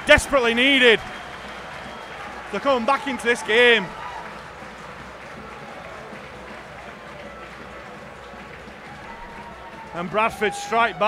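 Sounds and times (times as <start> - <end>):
light applause: 0.0 - 11.0.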